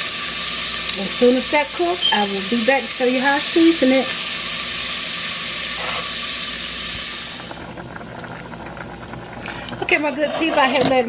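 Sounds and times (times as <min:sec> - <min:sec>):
bacon sizzling: 0:00.0 - 0:11.0
fat crackling and popping: 0:04.9 - 0:11.0.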